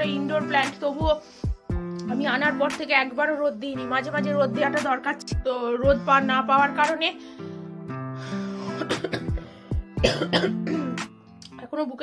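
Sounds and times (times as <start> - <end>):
acoustic guitar music: 0.0 - 12.0
woman coughing: 8.7 - 11.1.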